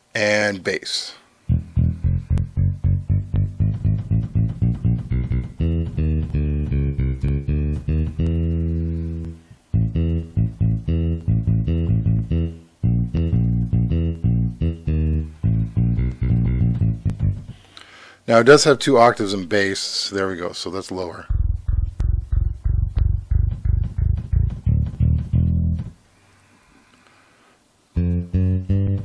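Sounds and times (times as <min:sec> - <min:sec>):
synthesized bass notes: 0:01.4 - 0:17.8, 0:18.5 - 0:19.7, 0:21.2 - 0:26.0, 0:27.9 - 0:29.0.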